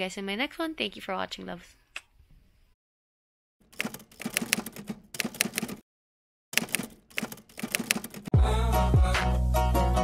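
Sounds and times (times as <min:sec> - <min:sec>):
typewriter key clacks: 0:06.6 - 0:08.3.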